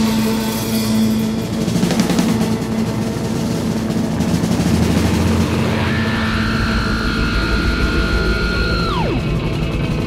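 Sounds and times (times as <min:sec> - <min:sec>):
rumbling guitar noise drone: 0:00.0 - 0:10.0.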